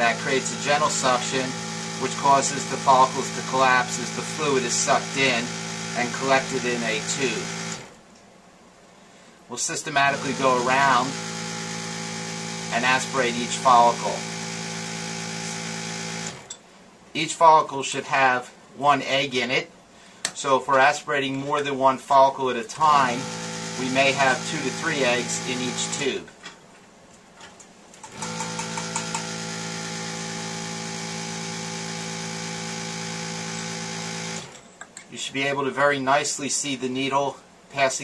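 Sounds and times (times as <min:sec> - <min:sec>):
suction pump humming: 0:00.0 - 0:08.0, 0:10.0 - 0:16.6, 0:22.7 - 0:26.3, 0:28.0 - 0:34.7.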